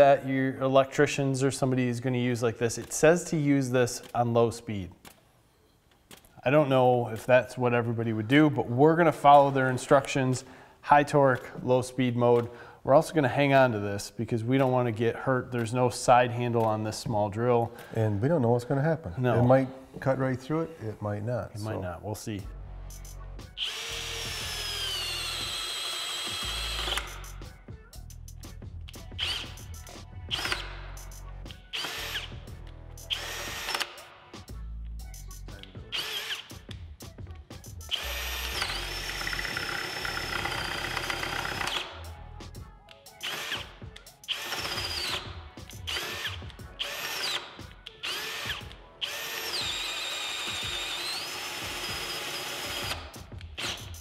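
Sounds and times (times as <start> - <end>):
cordless drill boring through wood: 23.6 - 27.4, 29.2 - 29.6, 30.3 - 30.8, 31.7 - 32.4, 33.0 - 34.0, 35.9 - 36.6, 37.9 - 42.0, 43.2 - 54.0.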